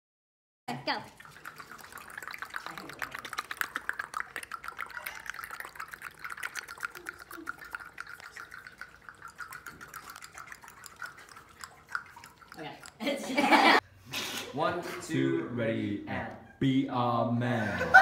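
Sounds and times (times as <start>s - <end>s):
person making clicking mouth sounds: 2.6s - 13.0s.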